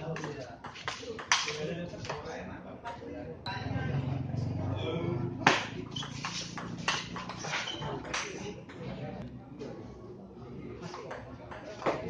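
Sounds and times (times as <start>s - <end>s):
murmur of voices: 0.0s - 12.0s.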